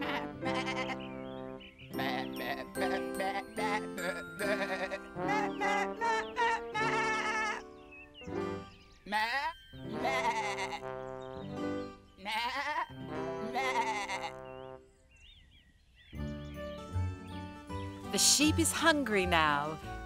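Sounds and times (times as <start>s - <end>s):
cartoon sheep bleating: 0.0s - 1.0s, 1.9s - 7.6s, 9.1s - 10.9s, 12.2s - 14.4s
light children's music: 0.0s - 14.8s, 16.1s - 20.0s.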